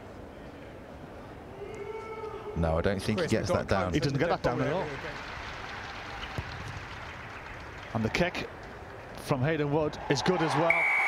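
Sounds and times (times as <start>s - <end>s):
stadium ambience hiss: 0.0s - 11.0s.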